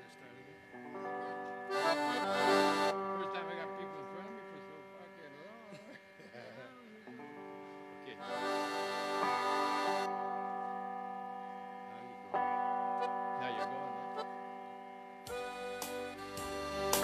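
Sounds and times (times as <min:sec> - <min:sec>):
keyboard held chords: 0:00.0 - 0:17.0
drum beat with backing: 0:15.3 - 0:17.0.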